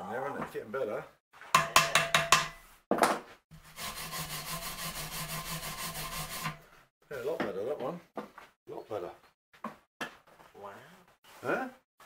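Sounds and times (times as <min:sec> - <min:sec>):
knock on metal: 0:01.6 - 0:03.2
wire brush scrubbing metal: 0:03.5 - 0:06.7.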